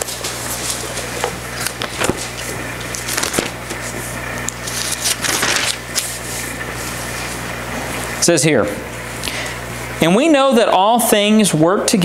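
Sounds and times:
paper rustle: 0:00.0 - 0:07.4
low electrical hum: 0:00.0 - 0:12.0.

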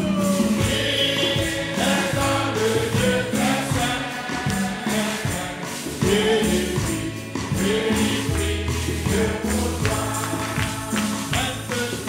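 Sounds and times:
congregation singing a hymn: 0:00.0 - 0:12.0
jingling percussion: 0:00.0 - 0:12.0
hand clapping: 0:01.4 - 0:12.0.

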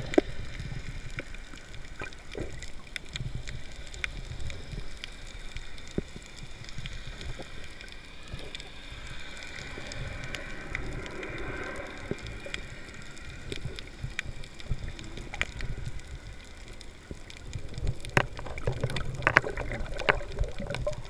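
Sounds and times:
underwater rumble of moving water: 0:00.0 - 0:21.0
underwater clicks and pops: 0:17.7 - 0:21.0.

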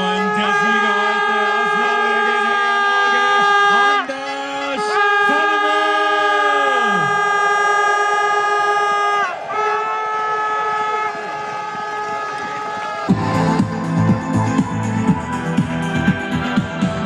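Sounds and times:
air horns blaring: 0:00.0 - 0:17.0.

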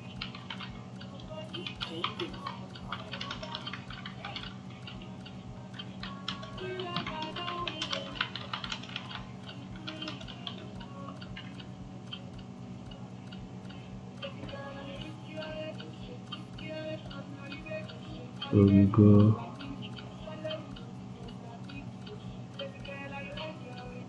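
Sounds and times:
keyboard typing: 0:00.0 - 0:12.4
low steady hum: 0:00.0 - 0:24.0.

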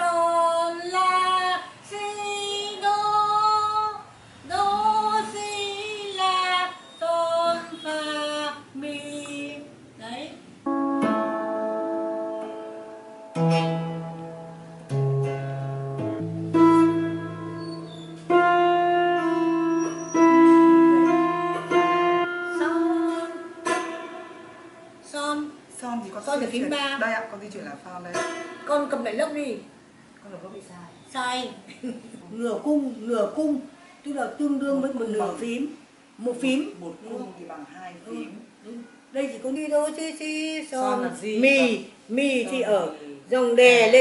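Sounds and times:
woman singing: 0:00.0 - 0:09.7, 0:22.3 - 0:23.5
lap steel guitar notes: 0:10.6 - 0:25.2, 0:28.2 - 0:29.0.

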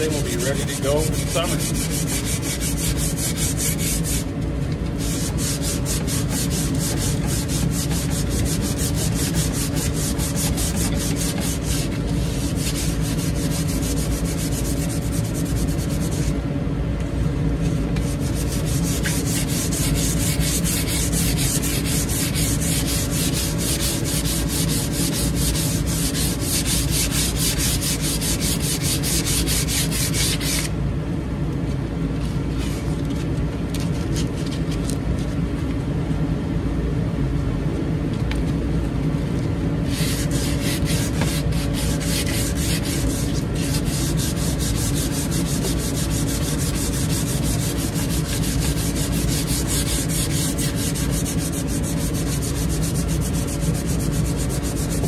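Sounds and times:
sandpaper rubbing on wood: 0:00.0 - 0:04.3, 0:05.0 - 0:16.4, 0:18.0 - 0:30.7, 0:39.8 - 0:55.0.

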